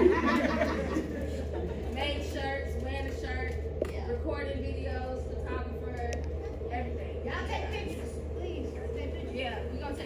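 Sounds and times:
steady low hum: 0.0 - 10.0
woman speaking in echoing room: 1.8 - 10.0.

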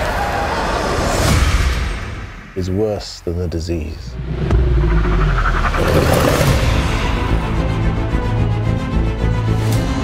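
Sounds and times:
deep heavy rumble: 4.0 - 7.6
whooshing noise: 4.1 - 7.2.

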